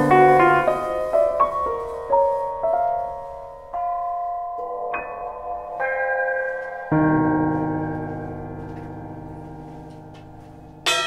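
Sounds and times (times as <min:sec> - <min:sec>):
drum kit: 0:00.0 - 0:02.1
keyboard playing slow chords: 0:03.8 - 0:10.9.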